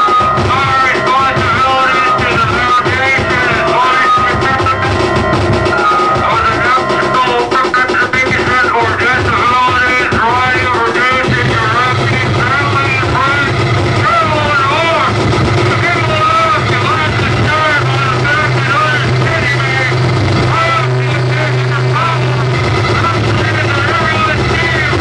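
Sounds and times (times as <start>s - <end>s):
loud low synthesizer drone: 0.0s - 25.0s.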